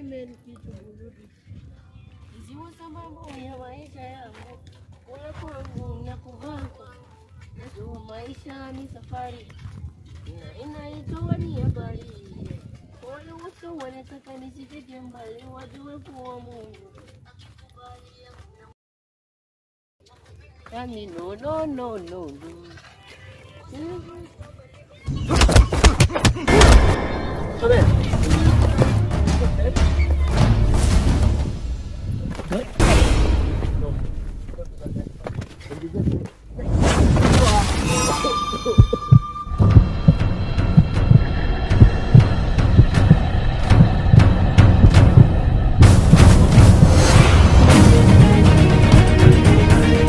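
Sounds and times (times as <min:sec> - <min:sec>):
loud blast-like impact: 0:26.5 - 0:29.4, 0:30.6 - 0:34.9, 0:44.2 - 0:48.2
low rumble: 0:26.5 - 0:35.4, 0:36.1 - 0:48.9
bass-heavy background music: 0:27.4 - 0:34.1, 0:39.6 - 0:50.0.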